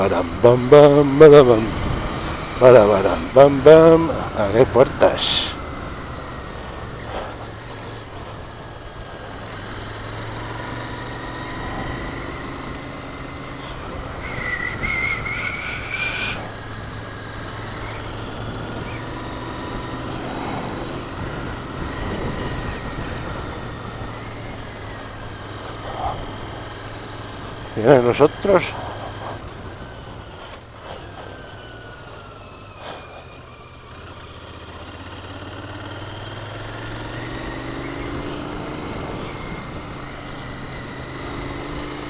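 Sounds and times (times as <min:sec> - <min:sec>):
motorcycle engine running: 0:00.0 - 0:42.0
high whine: 0:11.5 - 0:17.0
wind noise: 0:13.6 - 0:17.5, 0:18.2 - 0:24.7.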